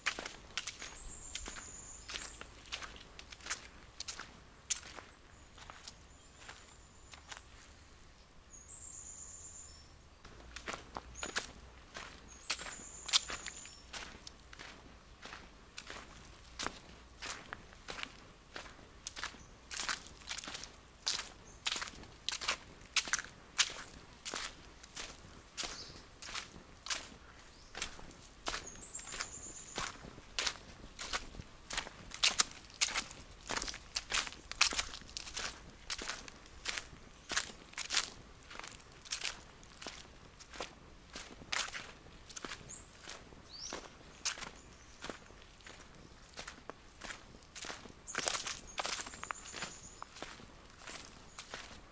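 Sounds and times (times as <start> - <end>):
footsteps on leaves and dirt: 0.0 - 7.9, 10.2 - 51.9.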